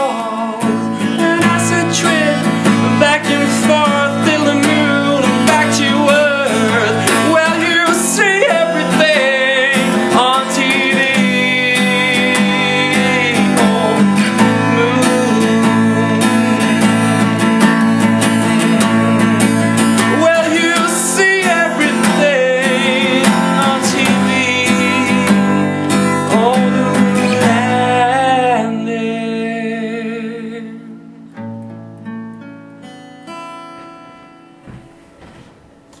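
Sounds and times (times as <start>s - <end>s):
man singing: 0.0s - 31.0s
acoustic guitar strummed: 0.0s - 36.0s.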